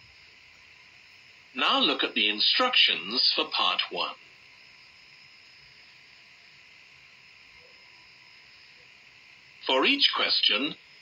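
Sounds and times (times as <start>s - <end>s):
faint steady hiss: 0.0s - 11.0s
faint thin hum: 0.0s - 11.0s.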